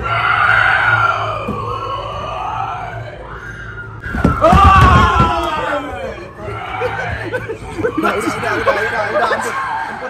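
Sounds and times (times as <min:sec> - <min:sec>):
people shrieking and wailing: 0:00.0 - 0:10.0
screaming: 0:00.0 - 0:10.0.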